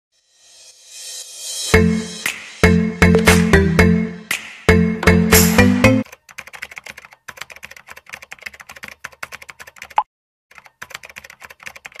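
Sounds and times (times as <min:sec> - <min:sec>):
laptop keyboard typing: 0:06.0 - 0:12.0.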